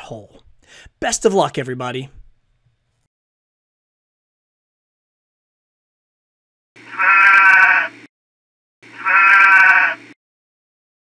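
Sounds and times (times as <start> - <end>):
sheep bleating: 6.9 - 8.0, 9.0 - 10.0.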